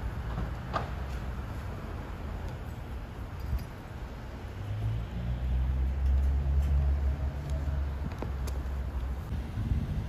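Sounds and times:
vehicle engine rumbling: 0.0 - 10.0.

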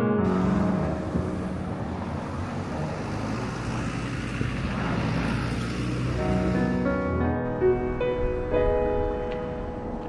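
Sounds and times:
car passing by: 0.2 - 10.0.

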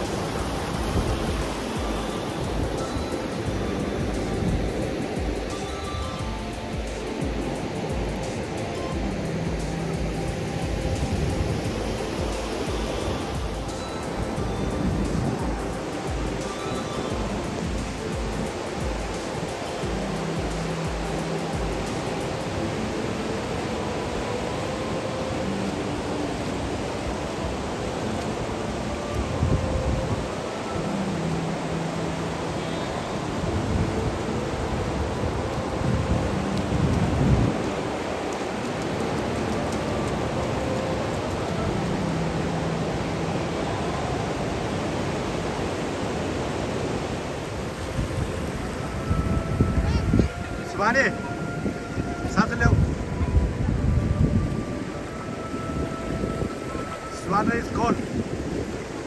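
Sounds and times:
faint background music: 0.0 - 59.0
ocean surf breaking on beach: 0.0 - 59.0.

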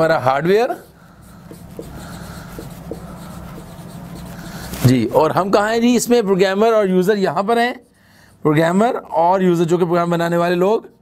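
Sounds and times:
marker pen writing on whiteboard: 0.4 - 5.2, 6.7 - 9.1.

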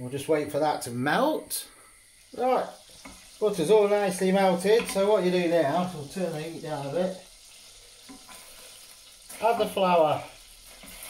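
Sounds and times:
butter sizzling in a saucepan: 1.7 - 11.0
wooden spoon stirring: 2.6 - 7.2, 8.0 - 10.0, 10.6 - 11.0.

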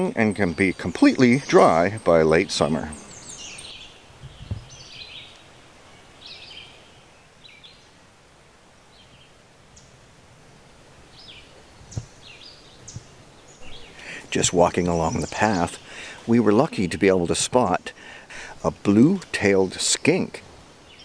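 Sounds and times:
songbirds chirping: 0.0 - 21.0
soft low thumps: 4.2 - 4.8, 11.8 - 12.2.

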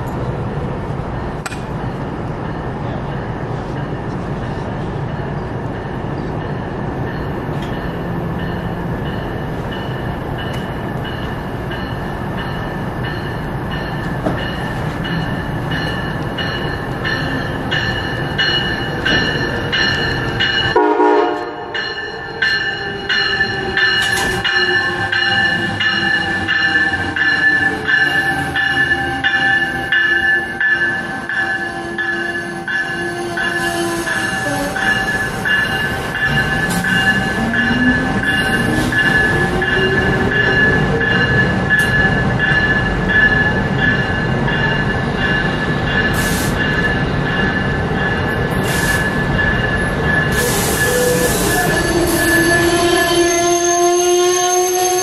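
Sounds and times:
train wheels squealing: 22.0 - 55.0.

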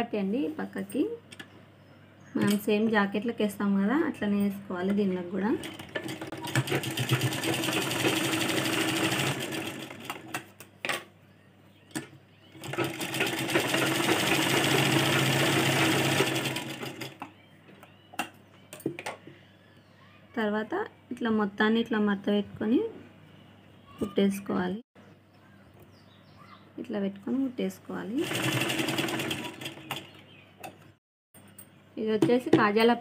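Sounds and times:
sewing machine stitching: 5.6 - 10.4, 12.5 - 17.2, 28.2 - 30.2
sharp clicks of sewing machine: 5.6 - 10.4, 28.2 - 30.1.

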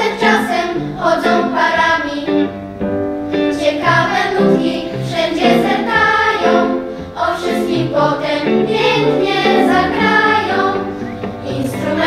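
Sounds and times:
children's choir singing: 0.0 - 2.6, 3.4 - 12.0.

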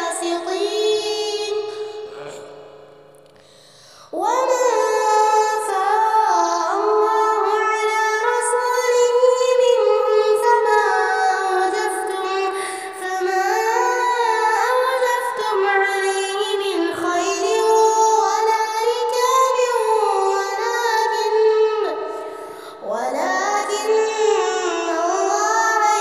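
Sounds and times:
high voice singing: 0.0 - 2.6.

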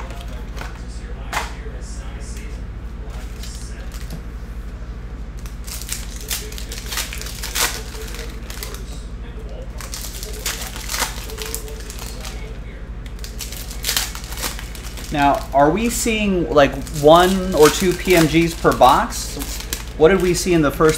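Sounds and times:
low electrical hum: 0.0 - 20.9
foil wrappers crinkling and tearing: 3.2 - 4.2, 5.3 - 20.9.

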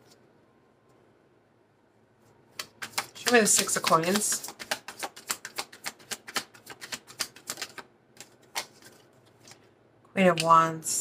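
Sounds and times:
cards being shuffled: 2.5 - 9.7.

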